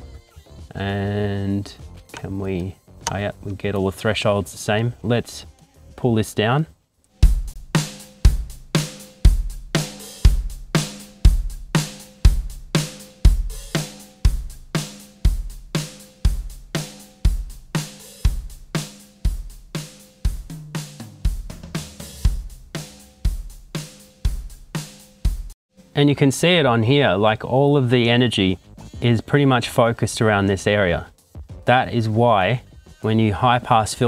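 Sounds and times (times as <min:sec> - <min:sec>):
compressed drum kit: 0:07.2 - 0:26.7.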